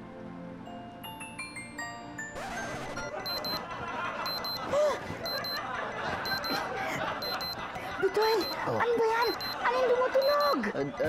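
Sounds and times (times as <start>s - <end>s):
background music: 0.0s - 10.6s
digital alarm clock beeping: 3.1s - 3.6s, 4.2s - 4.7s, 5.3s - 5.6s, 6.2s - 6.6s, 7.2s - 7.6s, 8.2s - 8.6s, 9.2s - 10.6s.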